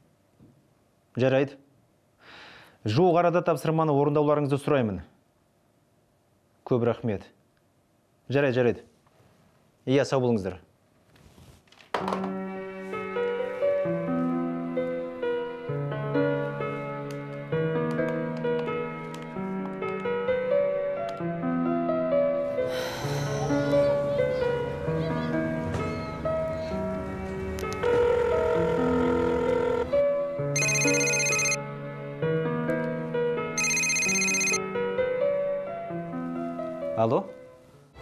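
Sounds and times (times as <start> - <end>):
electronic telephone ring: 30.6 - 31.6, 33.6 - 34.6
background music sustained notes: 31.6 - 33.6.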